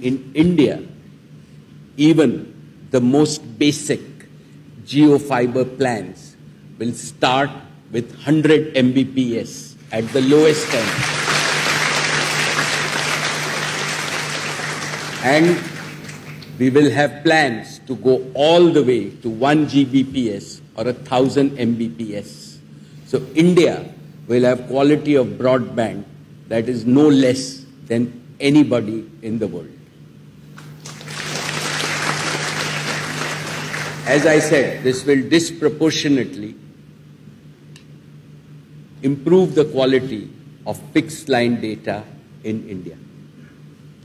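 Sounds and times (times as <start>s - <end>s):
audience applauding: 10.0s - 16.6s, 30.6s - 34.9s.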